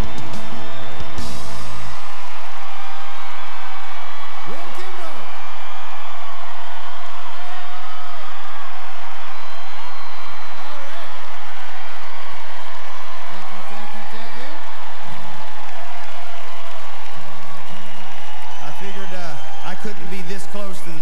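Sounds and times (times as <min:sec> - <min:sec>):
crowd cheering and chattering: 0:00.0 - 0:21.0
shouts and whoops: 0:00.0 - 0:21.0.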